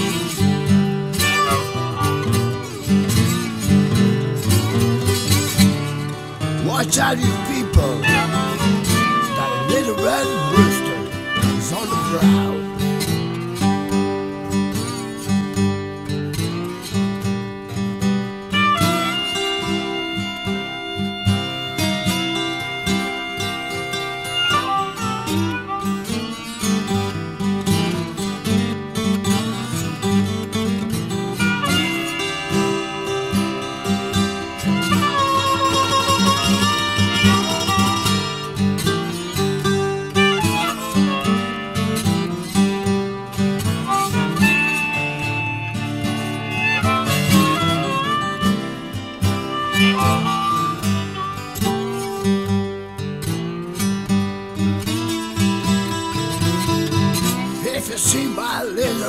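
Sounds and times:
acoustic guitars picking rhythm: 0:00.0 - 0:59.0
guitar lead line: 0:00.0 - 0:59.0.

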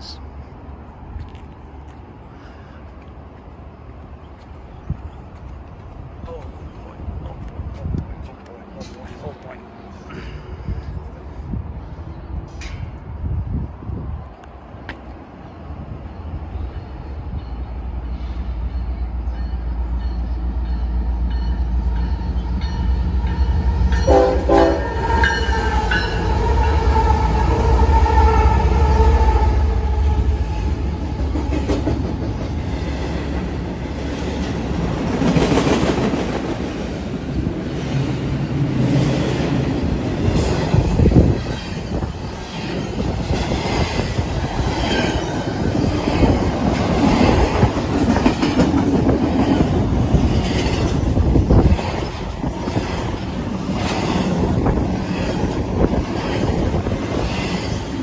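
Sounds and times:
diesel locomotive engine rumble: 0:00.0 - 0:58.0
train horn blasts: 0:23.8 - 0:30.6
train wheels clacking on rail joints: 0:44.6 - 0:58.0.

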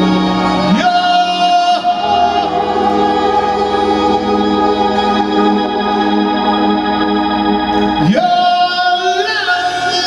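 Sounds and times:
live band with organ-like chords: 0:00.0 - 0:10.0.

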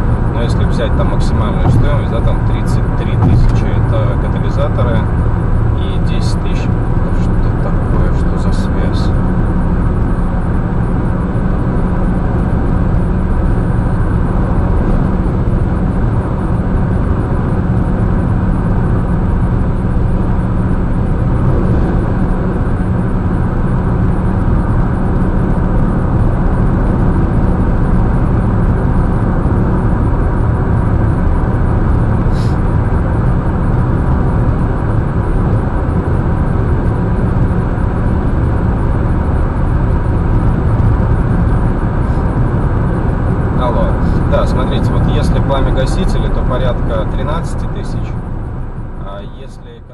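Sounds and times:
low engine hum: 0:00.0 - 0:49.9
road and tyre noise: 0:00.0 - 0:49.9.

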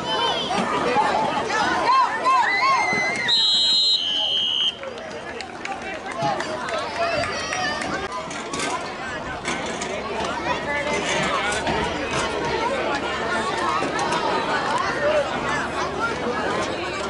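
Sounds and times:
spectators shouting: 0:00.0 - 0:05.0
crowd chatter: 0:00.0 - 0:17.0
referee's whistle blasts: 0:03.0 - 0:04.8.

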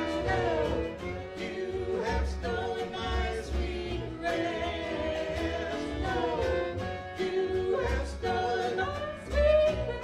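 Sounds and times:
acoustic guitar: 0:00.0 - 0:10.0
fiddle: 0:00.0 - 0:10.0
upright bass: 0:00.0 - 0:10.0
voices singing: 0:00.0 - 0:10.0.

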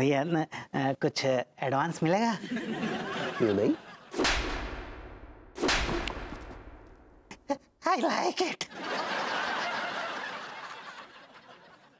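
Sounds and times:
slap across the face: 0:04.2 - 0:05.0, 0:05.6 - 0:06.7.

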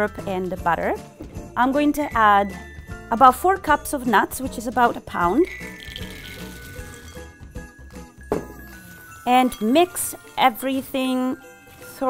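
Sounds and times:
soft background music: 0:00.0 - 0:12.0
nuts clattering into ceramic bowl: 0:05.6 - 0:07.0.

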